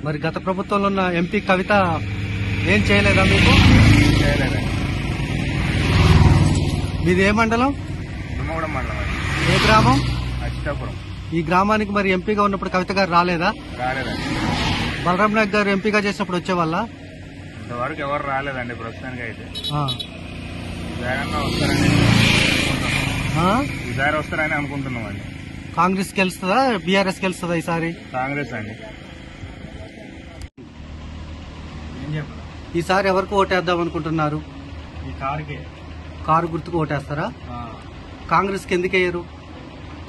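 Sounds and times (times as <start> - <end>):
vehicle engine rumbling: 0.0 - 40.0.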